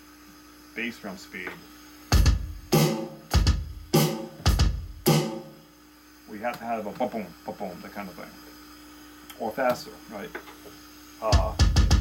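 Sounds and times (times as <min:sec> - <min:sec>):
electronic bass drum kicks: 0:02.1 - 0:05.5, 0:11.3 - 0:12.0
electronic snare hits: 0:02.1 - 0:05.6.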